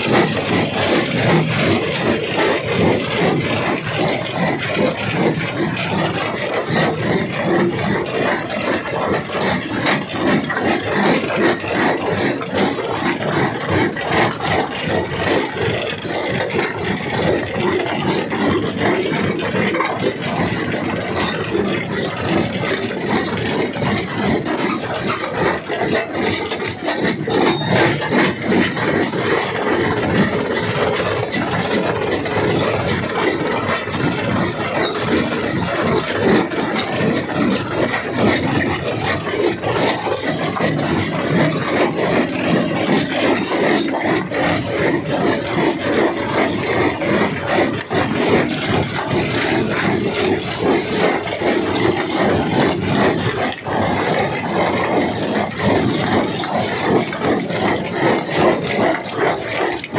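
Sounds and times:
rock crusher grinding stone: 0.0 - 59.9.

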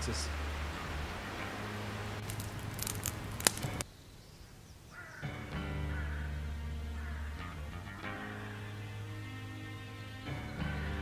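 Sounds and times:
campfire crackling: 0.0 - 3.9
sharp pop of fire: 2.2 - 3.8
music: 5.2 - 11.0.

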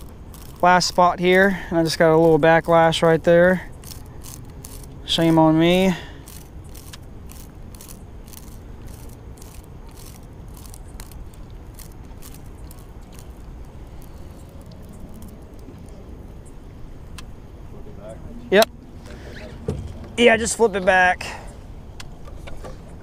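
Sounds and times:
fishing reel clicking: 0.0 - 15.6
low steady rumble: 0.0 - 23.0.

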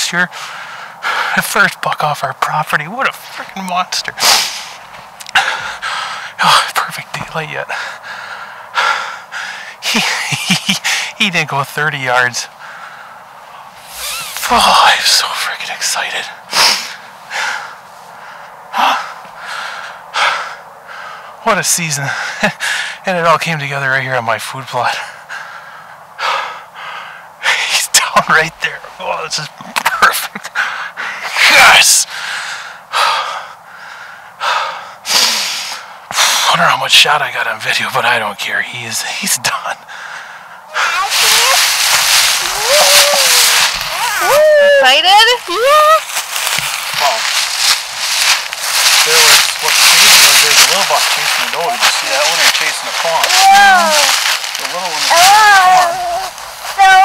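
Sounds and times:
man breathing hard: 0.3 - 1.4, 4.2 - 6.6, 7.7 - 11.2, 12.5 - 14.8, 16.4 - 21.4, 22.0 - 23.1, 25.0 - 27.8, 30.5 - 31.4, 32.1 - 36.5, 39.8 - 44.0
child's high voice: 40.7 - 41.8, 42.4 - 46.0, 53.2 - 54.3, 55.0 - 57.0
dry leaves crunching underfoot: 41.0 - 44.4, 45.6 - 57.0.

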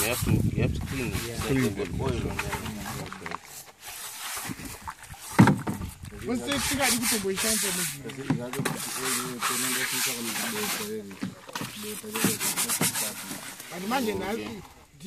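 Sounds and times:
brush scrubbing plastic pan: 0.0 - 14.8.

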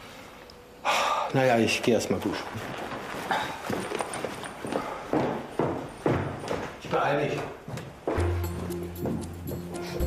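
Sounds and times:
footsteps walking across a room: 2.0 - 10.0.

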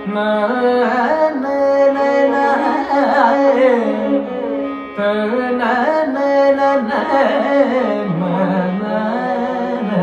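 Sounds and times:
man singing: 0.0 - 10.0
tanpura drone: 0.0 - 10.0
violin melody: 0.0 - 10.0.

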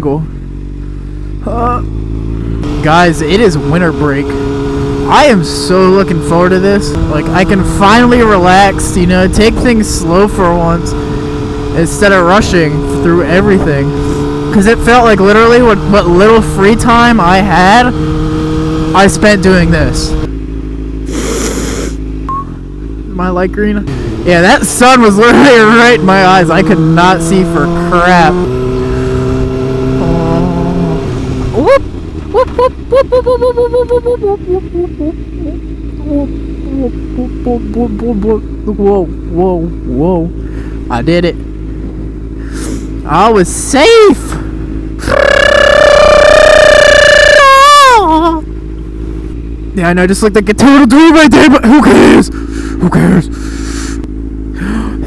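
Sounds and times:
motorcycle engine running: 0.0 - 55.0
man yelling high-pitched: 43.6 - 44.2, 45.0 - 48.4.

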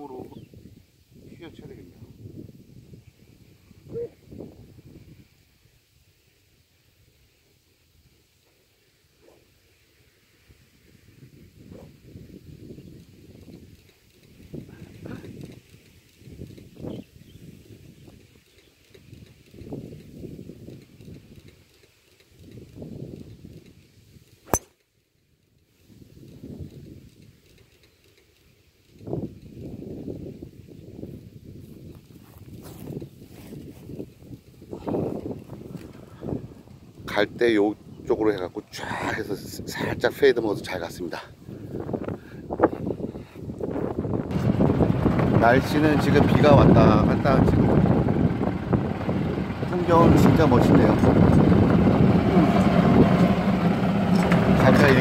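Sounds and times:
wind buffeting microphone: 0.0 - 5.5, 10.6 - 21.6, 22.4 - 24.3, 28.9 - 55.0
golf driver striking ball: 24.5 - 24.7.

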